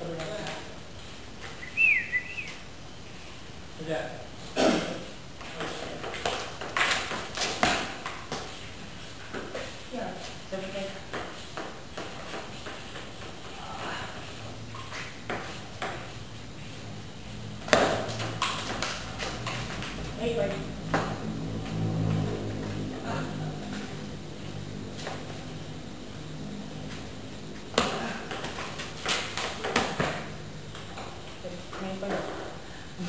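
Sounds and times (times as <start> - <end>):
bird chirping: 1.6 - 2.7.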